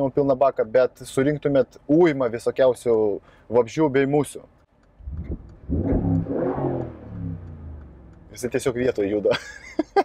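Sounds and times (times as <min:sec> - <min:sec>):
car engine revving: 0:05.0 - 0:09.0.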